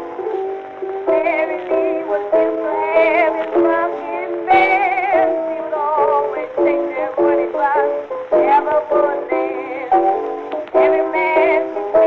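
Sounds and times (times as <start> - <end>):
woman singing blues with vibrato: 1.0 - 12.0.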